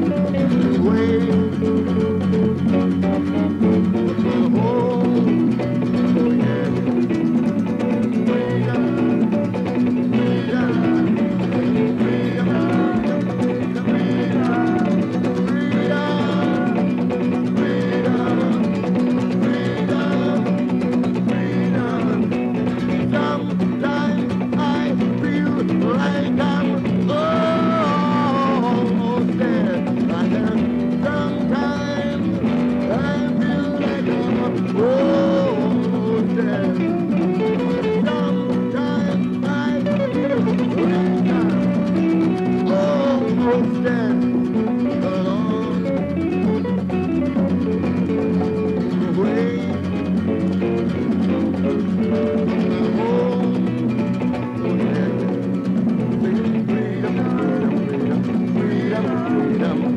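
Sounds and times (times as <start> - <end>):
sliding guitar melody: 0.0 - 59.9
strummed acoustic guitar chord: 0.0 - 59.9.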